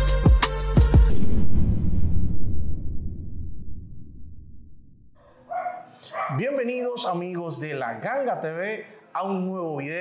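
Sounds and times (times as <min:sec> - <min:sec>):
man speaking energetically: 0:06.2 - 0:10.0.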